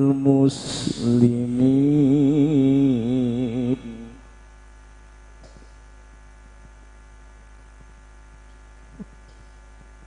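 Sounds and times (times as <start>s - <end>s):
electrical mains hum: 0.0s - 10.0s.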